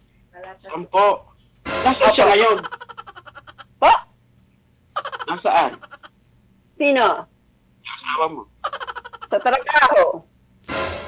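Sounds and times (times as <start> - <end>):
people laughing: 1.9 - 3.7, 5.0 - 6.1, 8.6 - 9.8.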